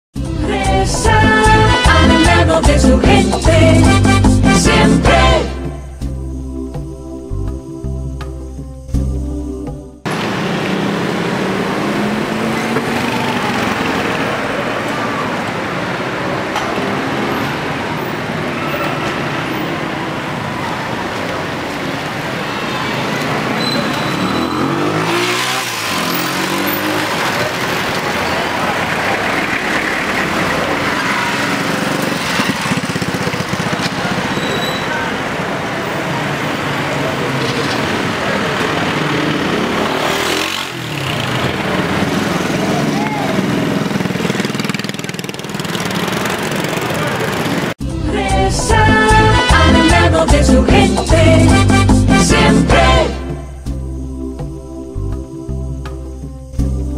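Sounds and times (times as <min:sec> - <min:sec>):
motorcycles passing: 0:10.0 - 0:53.5
cars passing: 0:10.0 - 0:54.1
people's voices: 0:10.1 - 0:25.1, 0:26.4 - 0:32.2, 0:32.8 - 0:44.7, 0:46.2 - 0:51.4.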